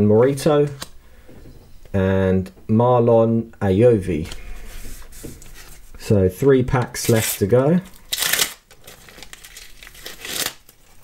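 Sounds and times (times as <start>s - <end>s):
plastic wrapper crinkling: 7.0s - 11.0s.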